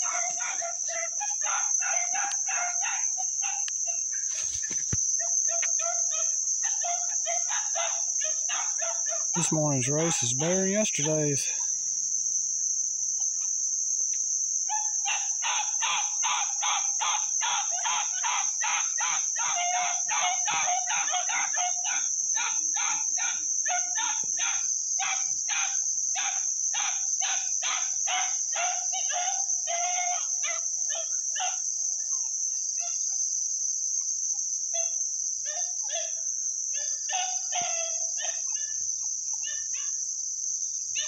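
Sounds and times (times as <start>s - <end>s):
puppies yipping: 0.0s - 3.6s, 15.1s - 31.6s
insects droning: 0.0s - 41.0s.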